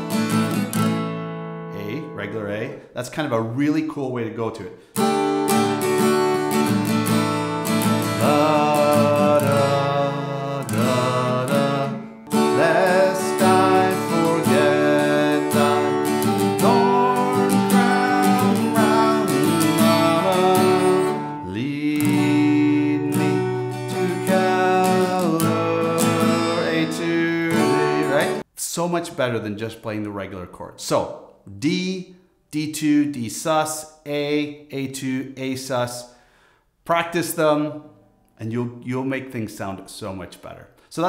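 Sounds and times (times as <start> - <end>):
acoustic guitar strumming chords: 0.0 - 2.4, 5.0 - 28.4.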